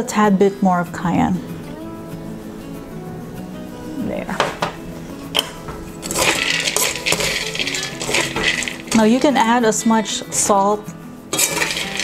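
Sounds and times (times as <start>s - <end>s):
soft background music: 0.0s - 12.0s
peanuts scraping in metal wok: 4.1s - 12.0s.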